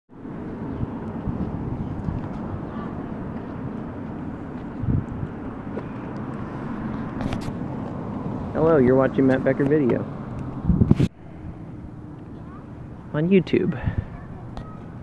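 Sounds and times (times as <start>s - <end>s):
low outdoor rumble: 0.1s - 15.0s.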